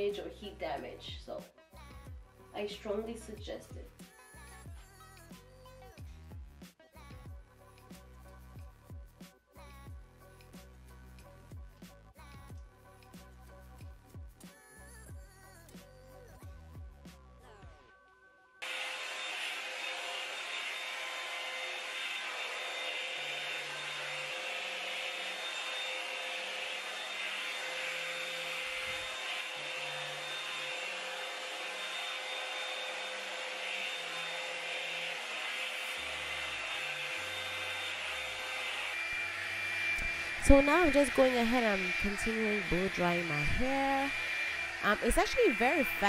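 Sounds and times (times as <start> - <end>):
quiet background music: 0.0 - 6.0
hot-air dryer brush hissing: 18.6 - 46.0.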